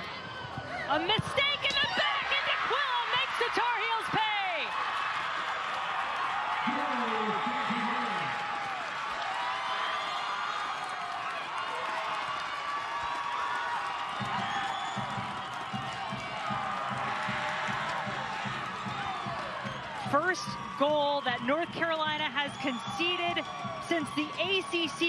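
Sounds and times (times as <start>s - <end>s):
crowd cheering and shouting: 0.0s - 25.0s.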